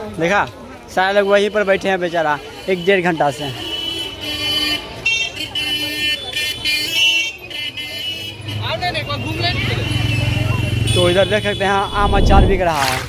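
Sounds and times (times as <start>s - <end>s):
steady low hum: 11.9s - 12.8s
vehicles passing: 11.9s - 13.0s.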